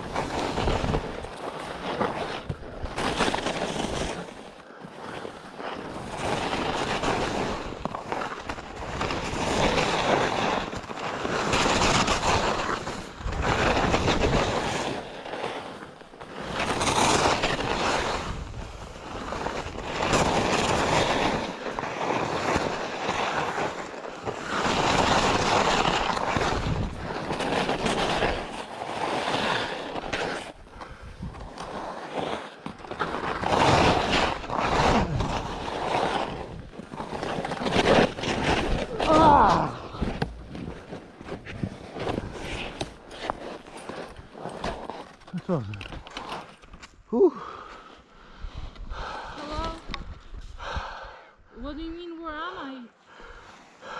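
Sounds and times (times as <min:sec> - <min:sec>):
skis scraping over packed snow: 0:00.0 - 0:50.8, 0:53.2 - 0:53.9.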